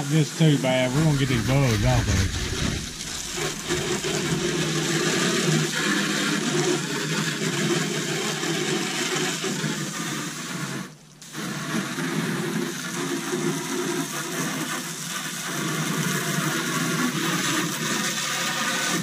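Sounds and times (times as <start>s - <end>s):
hose spraying water on wall: 0.0s - 19.0s.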